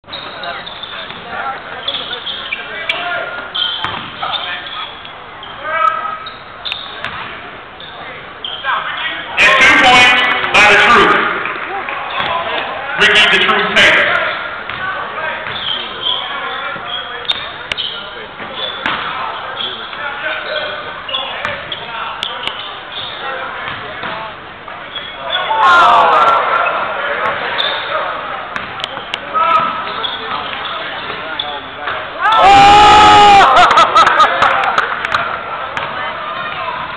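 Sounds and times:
crowd voices: 0:00.0 - 0:36.9
spectators shouting and talking: 0:00.0 - 0:36.9
shoe squeaks on court: 0:00.1 - 0:01.2, 0:01.8 - 0:07.2, 0:07.8 - 0:09.2, 0:15.4 - 0:24.1, 0:24.8 - 0:25.5, 0:27.2 - 0:28.0, 0:28.7 - 0:32.0
basketball bouncing on court: 0:03.8 - 0:04.2, 0:07.0 - 0:07.4, 0:11.5 - 0:12.4, 0:14.7 - 0:15.7, 0:16.8 - 0:19.2, 0:23.6 - 0:24.2, 0:28.5 - 0:31.2, 0:35.1 - 0:36.9
crowd cheering and shouting: 0:25.3 - 0:27.2, 0:32.2 - 0:34.8.

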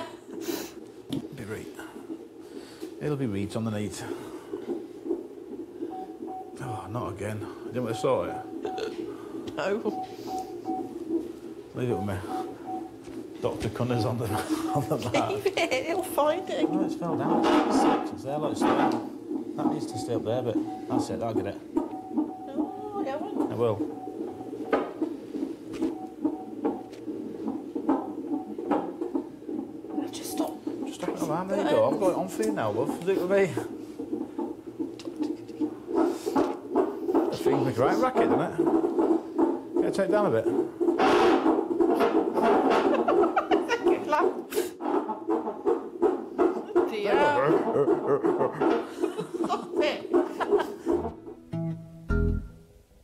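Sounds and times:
fetal heartbeat whooshing pulse: 0:00.0 - 0:51.5.

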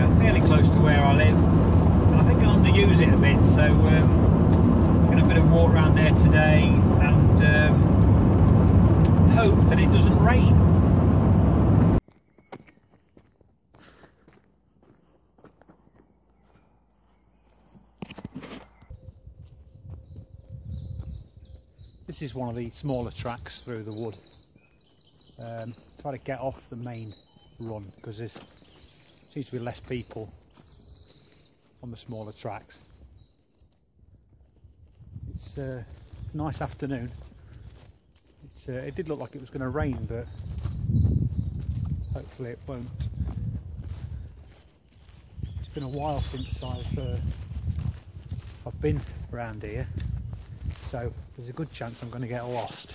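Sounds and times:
low rustling: 0:00.0 - 0:12.0
van engine and road noise: 0:00.0 - 0:12.0, 0:45.6 - 0:49.8
faint footsteps on a woodland track: 0:12.0 - 0:52.9.

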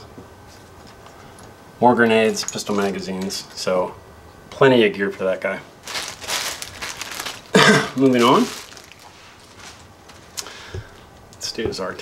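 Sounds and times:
soft hissy noise: 0:00.0 - 0:12.0
man coughing: 0:07.5 - 0:08.1.

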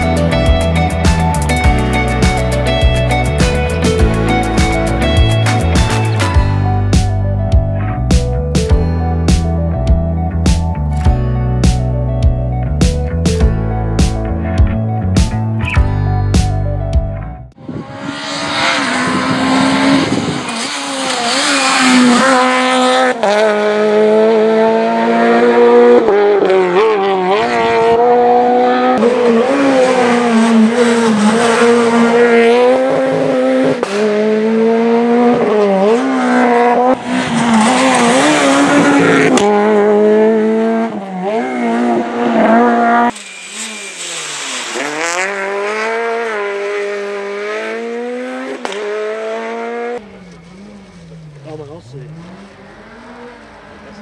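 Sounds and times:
rally car engine revving: 0:17.5 - 0:54.0.

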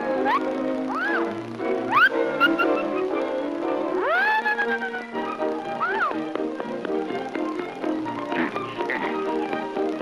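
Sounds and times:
cartoon background music: 0:00.0 - 0:10.0
cartoon cat meowing wail: 0:04.0 - 0:06.2.

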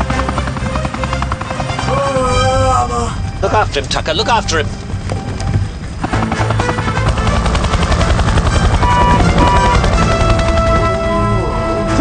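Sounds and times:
film score music: 0:00.0 - 0:12.0
helicopter rotor blade chop: 0:00.0 - 0:12.0.

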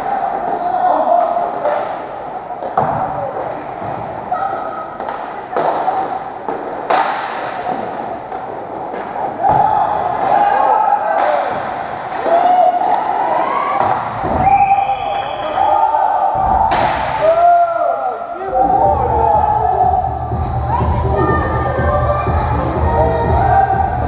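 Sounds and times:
hits against rink boards: 0:05.0 - 0:10.4, 0:16.4 - 0:17.3.

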